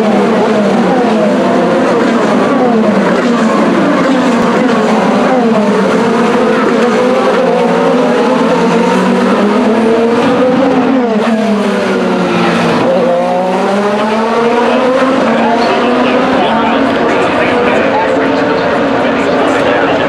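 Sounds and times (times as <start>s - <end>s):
race cars passing at high revs: 0.0s - 20.0s.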